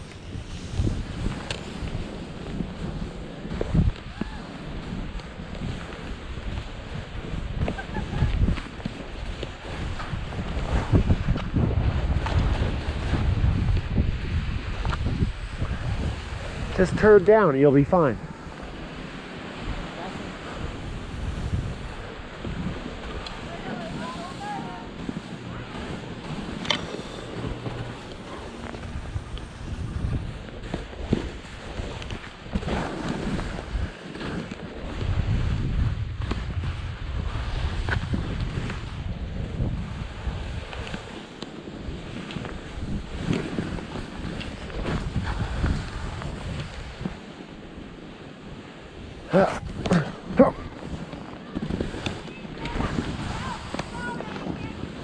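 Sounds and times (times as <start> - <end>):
skis scraping on snow: 0.0 - 55.0
wind rushing over microphone: 0.0 - 55.0.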